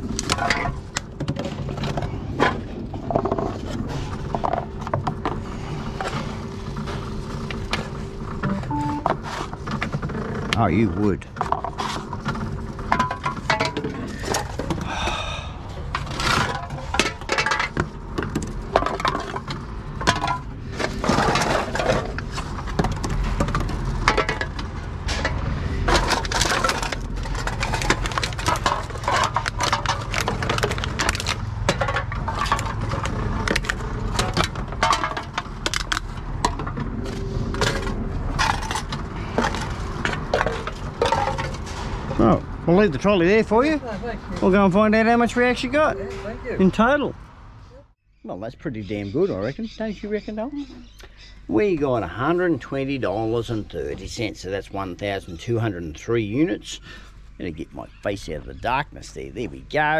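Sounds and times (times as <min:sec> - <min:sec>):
cans and bottles clattering: 0:11.3 - 0:15.1, 0:15.8 - 0:42.2.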